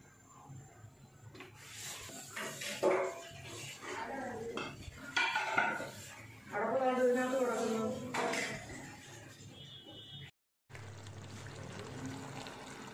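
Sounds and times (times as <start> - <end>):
clay pot and utensils clattering: 2.1 - 6.1, 7.5 - 9.1.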